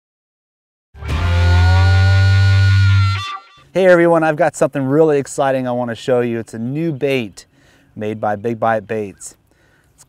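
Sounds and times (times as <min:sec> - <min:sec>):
distorted electric guitar chord: 0:01.0 - 0:03.7.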